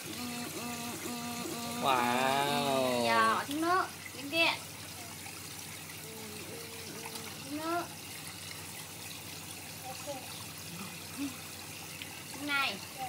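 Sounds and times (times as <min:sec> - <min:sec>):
low motor hum: 0:00.0 - 0:12.4
churning trickling water: 0:00.0 - 0:13.0.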